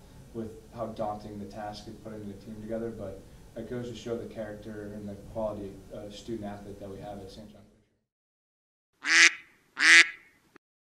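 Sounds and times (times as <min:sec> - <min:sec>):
duck quacking: 0:09.0 - 0:10.3.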